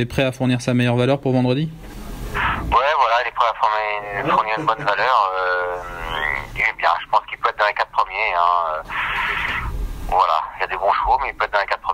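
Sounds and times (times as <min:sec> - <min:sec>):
man talking: 0:02.7 - 0:08.9, 0:10.1 - 0:11.9.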